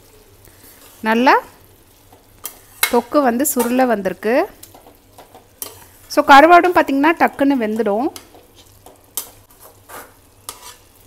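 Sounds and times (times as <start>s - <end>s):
low sizzle: 0.0s - 11.0s
spatula scraping metal pan: 2.4s - 3.0s, 5.3s - 6.1s, 8.2s - 11.0s.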